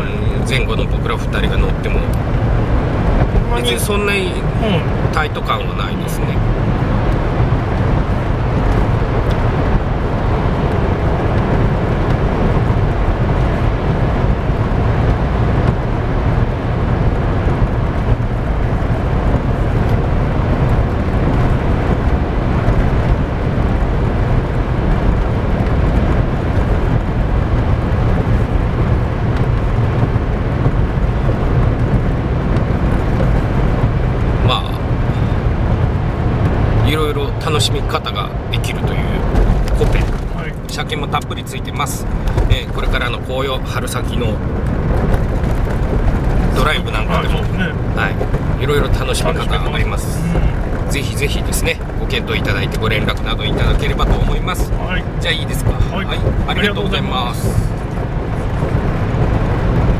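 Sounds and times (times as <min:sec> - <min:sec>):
car engine and tyre rumble: 0:00.0 - 0:59.9.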